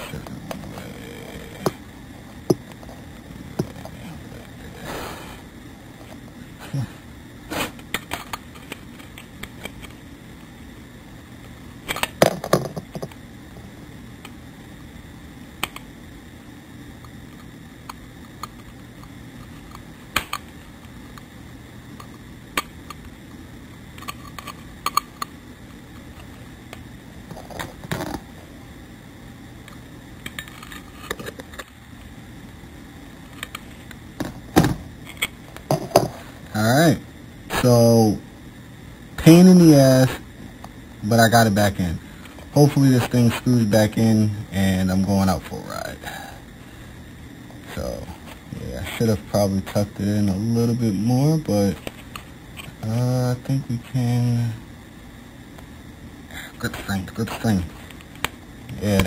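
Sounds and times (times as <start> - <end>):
faint steady hum: 0.0 - 59.0.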